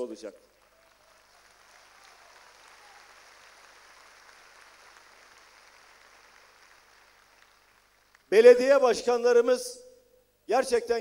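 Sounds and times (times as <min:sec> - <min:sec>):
audience applause: 0:00.5 - 0:08.3.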